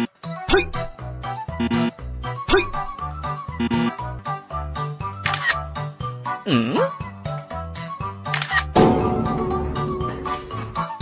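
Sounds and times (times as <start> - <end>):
upbeat background music: 0.0 - 11.0
camera shutter click: 5.2 - 5.6, 8.3 - 8.8.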